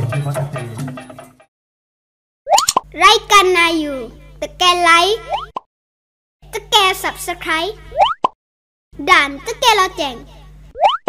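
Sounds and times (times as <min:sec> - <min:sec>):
steady low hum: 0:02.9 - 0:05.3.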